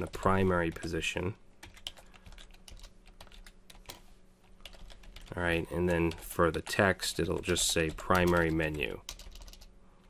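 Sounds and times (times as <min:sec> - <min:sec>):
computer keyboard typing: 0:01.6 - 0:09.7.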